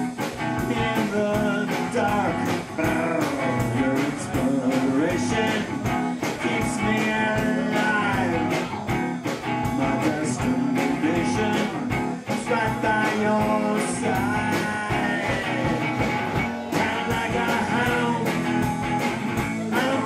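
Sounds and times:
band playing bluesy rock: 0.0s - 20.0s.

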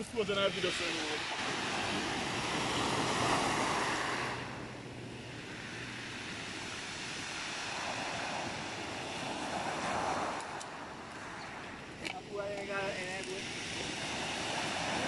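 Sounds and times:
waves breaking on pebble beach: 0.0s - 15.0s.

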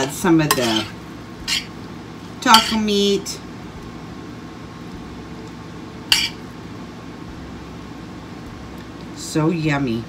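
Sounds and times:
low background hum: 0.0s - 10.0s
metal spoon clinking on cookware: 0.5s - 1.7s, 2.5s - 2.8s, 6.1s - 6.4s.

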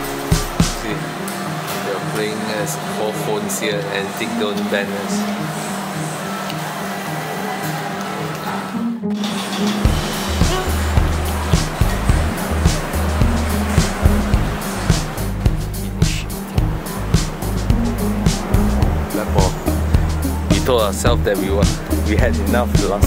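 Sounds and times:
background music with heavy bass: 0.0s - 1.6s, 8.8s - 23.0s.

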